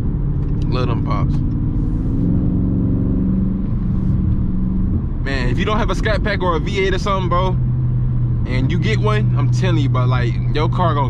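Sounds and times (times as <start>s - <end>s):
car engine exhaust drone: 0.0s - 11.0s.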